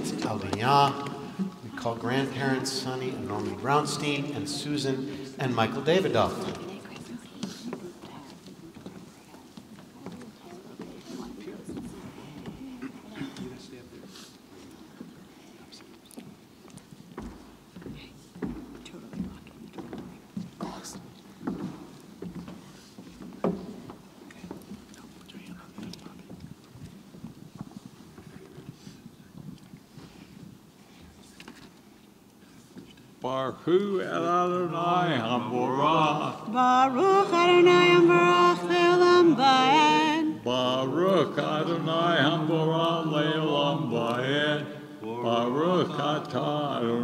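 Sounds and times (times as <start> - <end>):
people shuffling: 0.0 - 33.4
footsteps on hard floor: 6.3 - 33.2
faint taps and knocks: 16.1 - 31.9.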